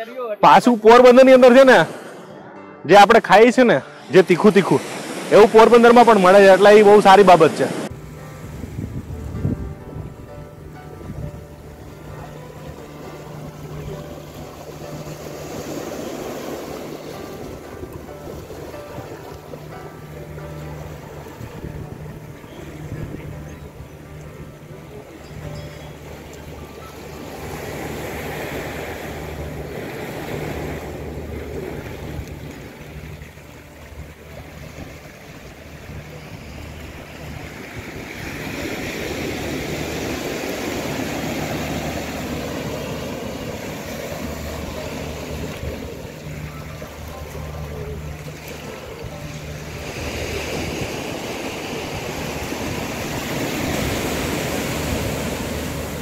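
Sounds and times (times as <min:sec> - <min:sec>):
soft music: 0:00.0 - 0:56.0
waves washing onto beach: 0:03.5 - 0:56.0.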